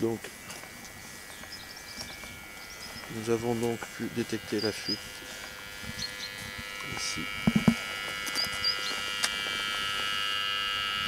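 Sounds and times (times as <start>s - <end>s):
leak detector buzzing tone: 0.0s - 11.0s.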